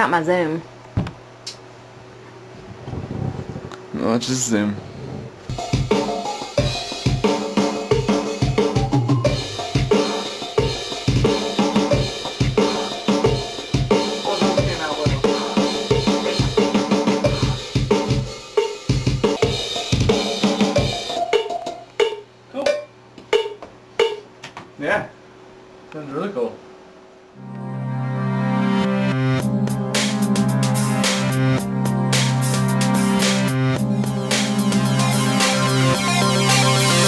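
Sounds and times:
kick drum pattern: 0:05.5 - 0:24.3, 0:29.4 - 0:37.0
rock drum kit playback: 0:05.5 - 0:24.3, 0:29.4 - 0:37.0.

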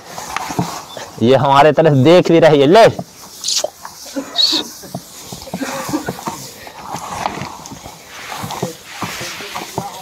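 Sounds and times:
hands rustling dry fodder: 0:00.0 - 0:10.0.

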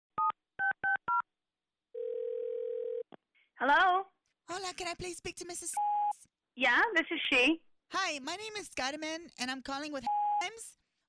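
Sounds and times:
phone ringing tone: 0:02.0 - 0:03.0.

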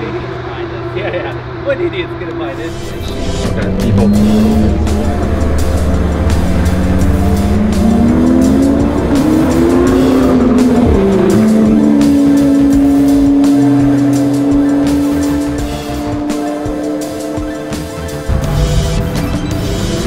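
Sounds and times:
sports car engine revving: 0:00.0 - 0:20.0
background music: 0:00.8 - 0:20.0.

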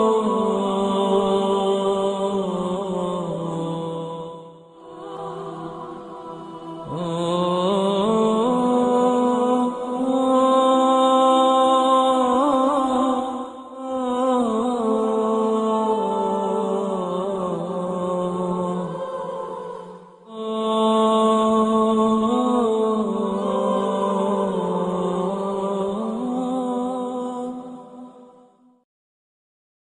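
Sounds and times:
unaccompanied sung vocals: 0:00.0 - 0:28.5
person singing a long note: 0:00.0 - 0:28.6.

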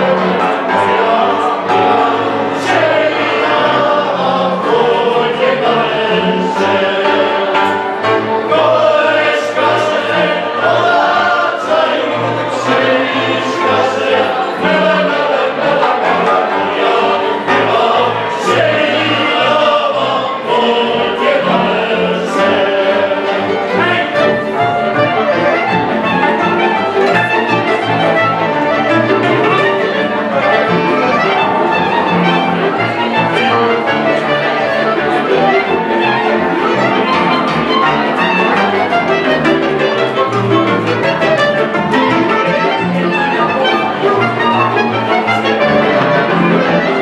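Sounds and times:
fiddles and cello: 0:00.0 - 0:47.0
voices singing a folk song: 0:00.0 - 0:47.0.

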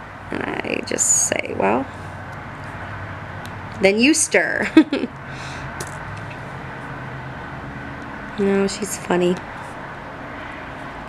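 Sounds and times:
low room hum: 0:00.0 - 0:11.0
woman laughing breathily: 0:04.6 - 0:05.6.

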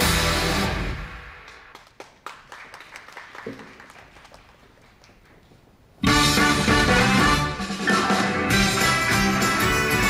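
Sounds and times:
audience clapping: 0:01.2 - 0:05.7
pop backing track: 0:06.0 - 0:10.0.

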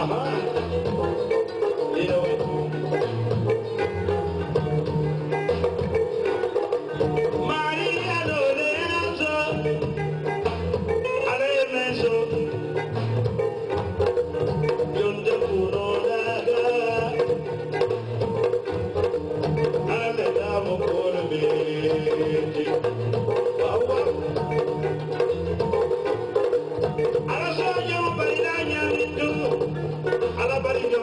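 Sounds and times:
low bass notes: 0:00.0 - 0:01.4, 0:02.0 - 0:06.2, 0:12.0 - 0:30.9
drum kit: 0:00.0 - 0:31.0
guitar: 0:00.0 - 0:31.0
kora plucked: 0:00.0 - 0:31.0.

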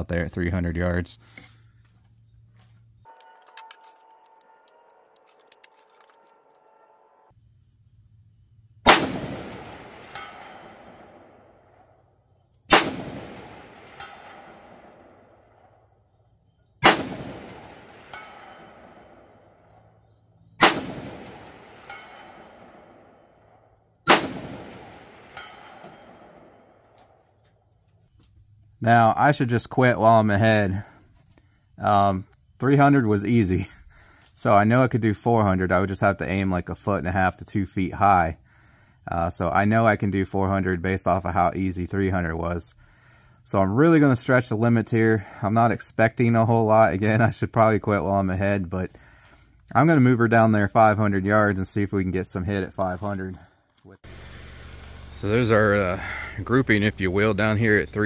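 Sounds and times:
rifle shots echoing: 0:08.8 - 0:11.9, 0:12.7 - 0:15.6, 0:16.8 - 0:19.6, 0:20.6 - 0:23.3, 0:24.1 - 0:26.8.

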